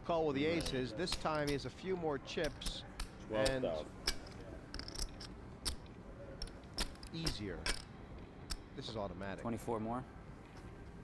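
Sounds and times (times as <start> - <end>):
poker chips clicking together: 3.4 - 7.9.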